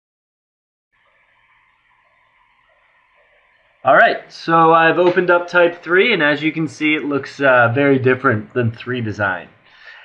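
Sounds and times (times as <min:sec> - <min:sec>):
microphone hiss: 0:01.0 - 0:10.0.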